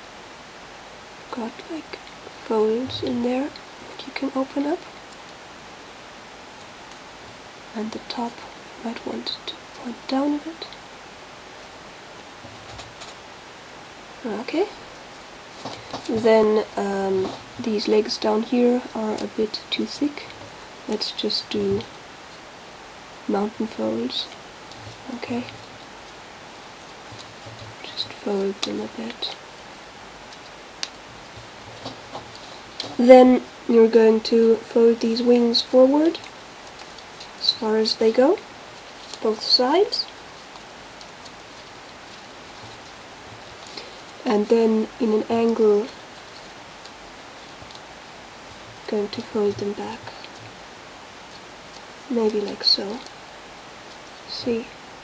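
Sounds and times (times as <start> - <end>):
steady background hiss: 0.0 - 55.0
paper crinkling: 15.0 - 17.9, 36.1 - 37.4, 38.5 - 44.3.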